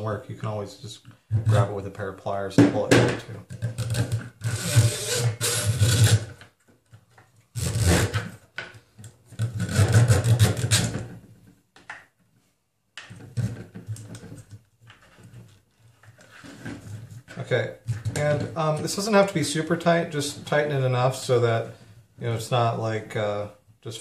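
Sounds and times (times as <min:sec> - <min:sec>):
rubber belt rasping against plastic: 0:03.6 - 0:06.4, 0:07.6 - 0:08.4, 0:09.3 - 0:11.0.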